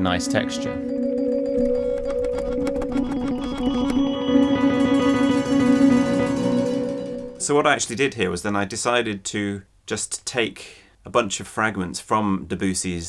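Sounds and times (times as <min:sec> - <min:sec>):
synthesized trilling: 0:00.3 - 0:07.6.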